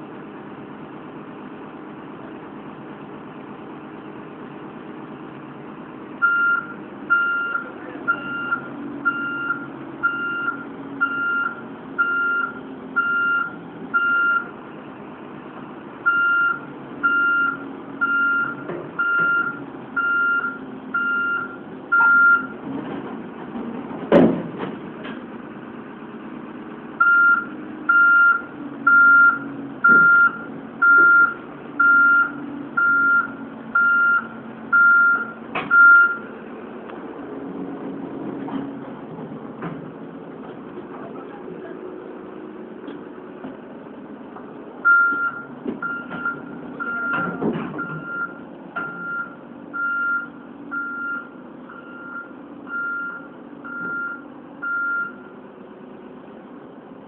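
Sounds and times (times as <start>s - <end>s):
diesel engine running: 0.0s - 57.0s
warning alarm beeping: 27.0s - 36.2s.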